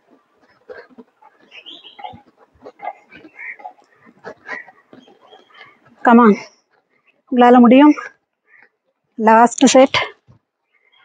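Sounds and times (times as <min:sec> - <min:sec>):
birds chirping: 0:00.0 - 0:09.9, 0:10.5 - 0:11.0.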